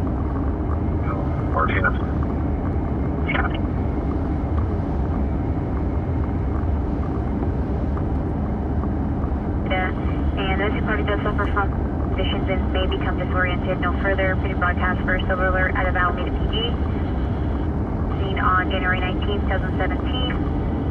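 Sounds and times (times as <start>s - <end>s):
car road noise rumble: 0.0s - 20.9s.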